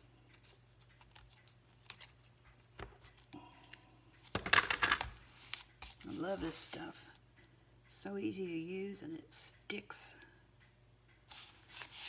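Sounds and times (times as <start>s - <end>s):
paper rustling: 11.3s - 12.0s.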